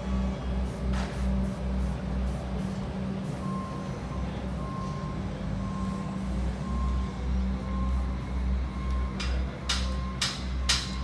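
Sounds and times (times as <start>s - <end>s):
steady low hum: 0.0s - 11.0s
electronic warning beeps: 3.4s - 11.0s.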